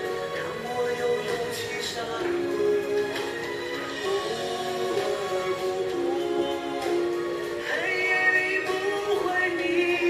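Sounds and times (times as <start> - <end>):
instrumental backing: 0.0 - 10.0
person singing gliding melody: 0.0 - 10.0.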